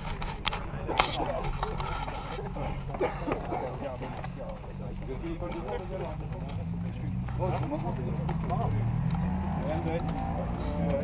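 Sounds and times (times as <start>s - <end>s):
men chattering: 0.0s - 11.0s.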